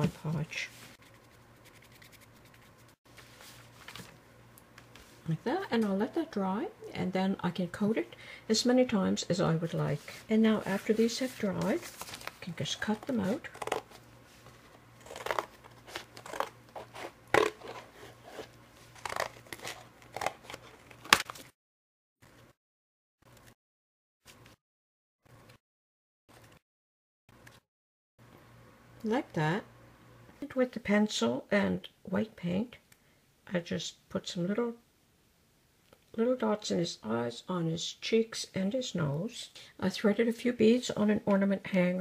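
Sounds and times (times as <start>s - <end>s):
paintbrush scratching on cardboard: 0.9s - 3.0s.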